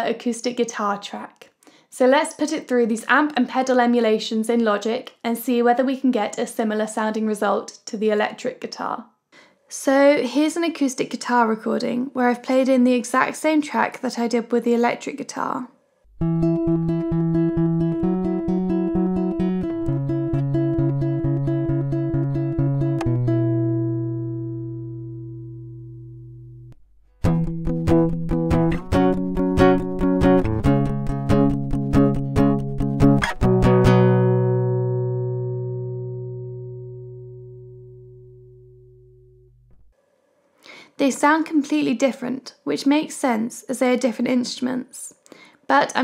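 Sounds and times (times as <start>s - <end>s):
acoustic guitar picked chords: 16.1s - 39.9s.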